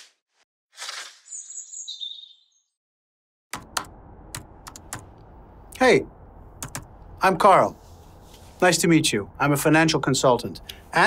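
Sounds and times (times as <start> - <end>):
birds chirping: 1.3 - 2.8
laptop keyboard typing: 3.5 - 5.1, 6.6 - 6.9.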